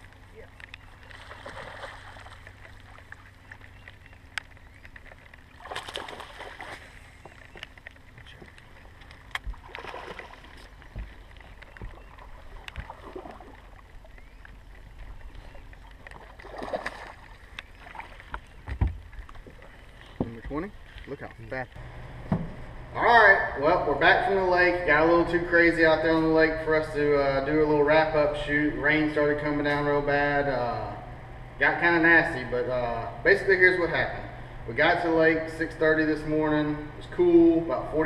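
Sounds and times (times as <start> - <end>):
water splashing: 0.0 - 21.2
steady low rumble: 0.0 - 38.0.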